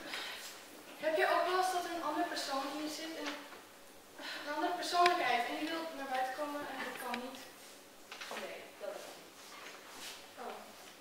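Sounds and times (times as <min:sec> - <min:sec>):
girls speaking: 0:01.0 - 0:03.6, 0:04.2 - 0:07.6.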